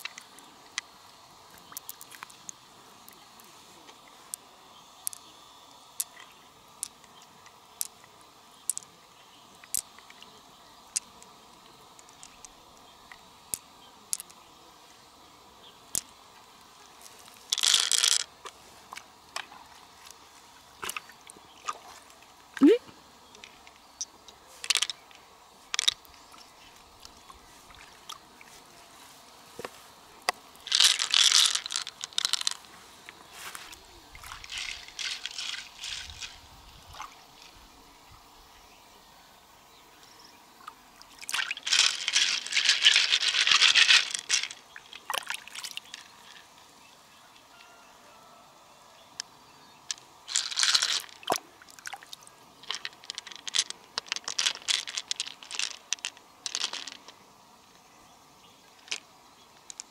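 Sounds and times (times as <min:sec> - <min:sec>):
water splashing and pouring: 0:41.1 - 0:46.0.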